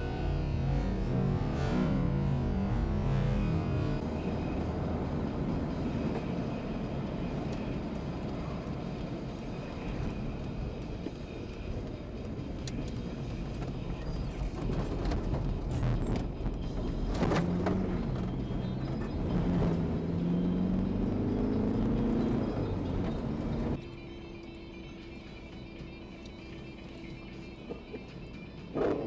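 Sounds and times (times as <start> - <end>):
car cabin road and engine noise: 0.0 - 29.0
background music: 9.1 - 29.0.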